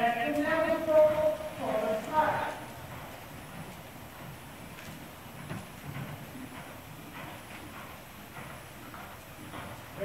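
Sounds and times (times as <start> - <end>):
person speaking: 0.0 - 2.7
horse hoofbeats: 0.0 - 10.0.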